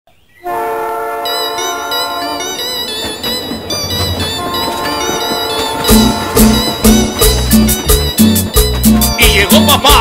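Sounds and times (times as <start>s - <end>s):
train horn chord: 0.4s - 3.1s, 4.0s - 9.7s.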